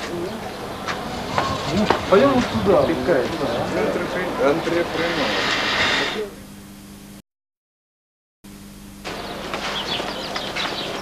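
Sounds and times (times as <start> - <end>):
electrical hum: 0.0 - 7.2, 8.5 - 11.0
loud even hiss: 4.7 - 6.4.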